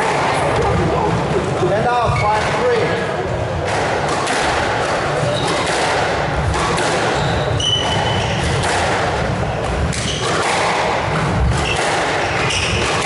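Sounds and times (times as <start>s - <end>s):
rackets striking ball: 3.6s - 13.0s
squash ball thudding on walls: 3.6s - 13.0s
shoes squeaking on wooden floor: 7.1s - 8.6s.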